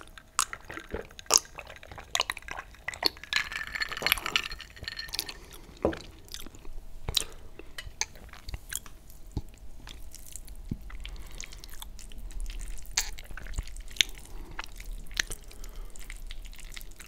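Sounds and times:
wet chewing: 0:00.0 - 0:03.3, 0:05.1 - 0:17.0.

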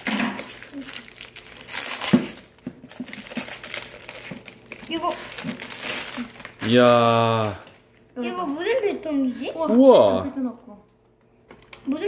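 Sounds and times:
plastic packaging crinkling: 0:00.0 - 0:08.0.

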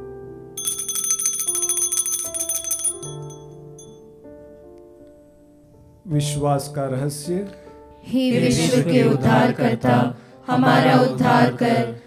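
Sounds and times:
altar bells shaken rapidly: 0:00.6 - 0:03.9.

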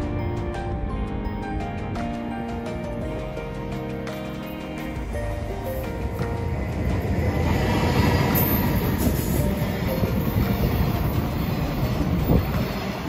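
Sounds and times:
train wheels rumbling on rails: 0:00.0 - 0:13.0.

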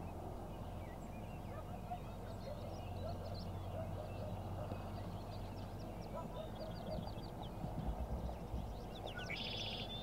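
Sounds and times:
birds chirping and whistling: 0:00.0 - 0:10.0
lower bird calls: 0:00.0 - 0:10.0.

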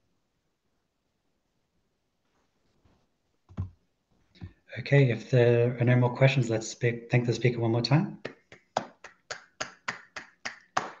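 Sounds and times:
person clapping: 0:08.2 - 0:11.0.

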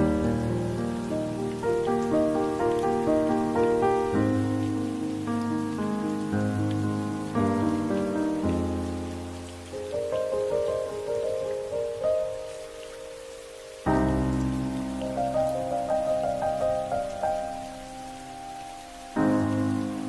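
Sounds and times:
gentle piano music: 0:00.0 - 0:20.0
rain hissing: 0:00.0 - 0:20.0.

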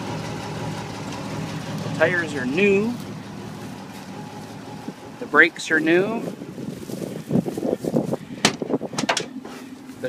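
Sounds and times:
door clicks and rattles: 0:08.4 - 0:09.4.

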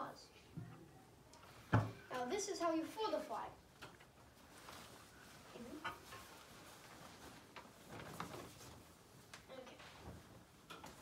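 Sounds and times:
cloth flag rustling: 0:04.2 - 0:11.0.

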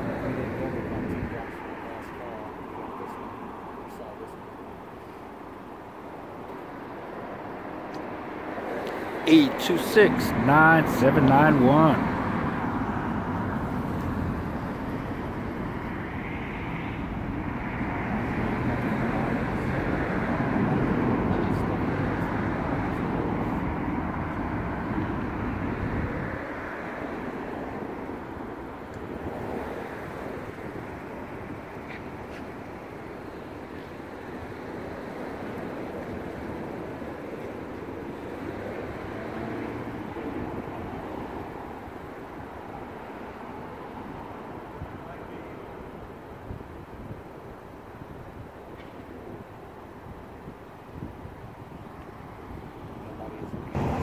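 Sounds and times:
traffic rumble: 0:00.0 - 0:54.0.

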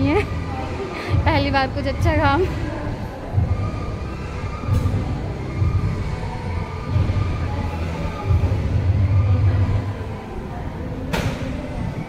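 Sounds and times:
food court background rumble: 0:00.0 - 0:12.0.

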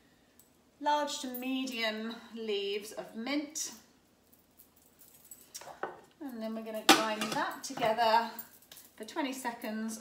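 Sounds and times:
small knock of kitchen items: 0:06.9 - 0:08.0.

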